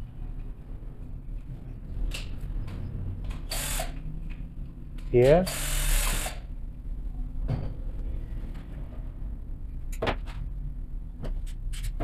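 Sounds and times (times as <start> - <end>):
cordless drill running: 3.5 - 3.9, 5.5 - 6.4.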